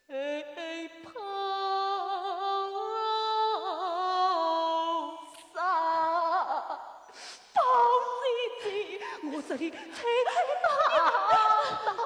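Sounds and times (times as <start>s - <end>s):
woman laughing in sing-song voice: 8.6s - 12.0s.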